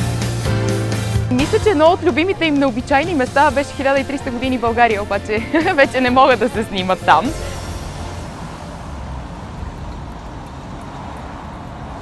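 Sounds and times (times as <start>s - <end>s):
cars driving past: 0.9s - 12.0s.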